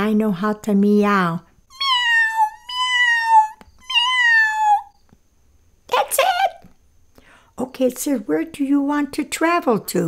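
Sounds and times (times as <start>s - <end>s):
woman imitating cat meows: 1.7s - 4.9s.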